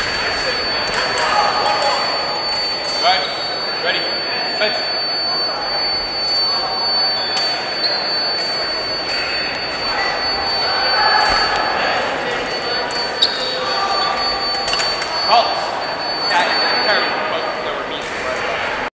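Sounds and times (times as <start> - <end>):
steady high-pitched tone: 0.0 - 18.8
echoing chatter of voices: 0.0 - 18.9.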